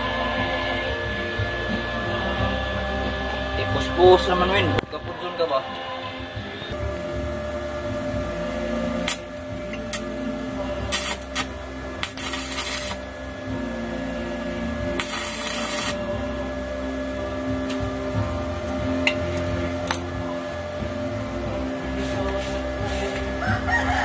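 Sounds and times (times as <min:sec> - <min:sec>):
arc welding crackle: 0:00.0 - 0:24.0
welder hum: 0:00.0 - 0:24.0.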